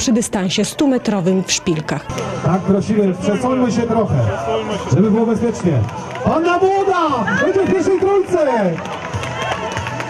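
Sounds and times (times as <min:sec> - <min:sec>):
spectators cheering and shouting: 0:00.8 - 0:10.0.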